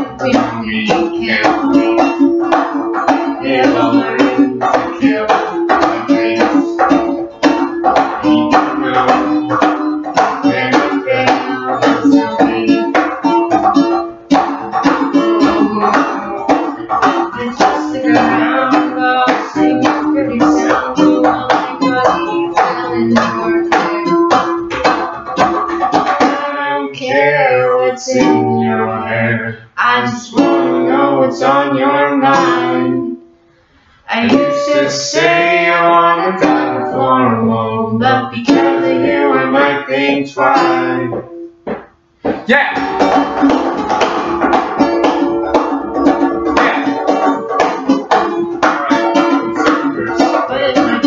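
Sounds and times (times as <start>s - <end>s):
ukulele strumming: 0.0s - 33.3s, 34.1s - 51.0s.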